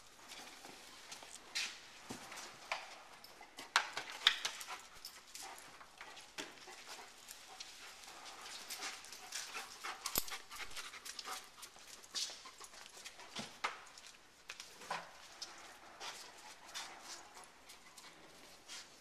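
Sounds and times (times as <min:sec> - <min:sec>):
clicks and rustles among boxes: 0:00.0 - 0:19.0
dog panting and sniffing: 0:00.2 - 0:19.0.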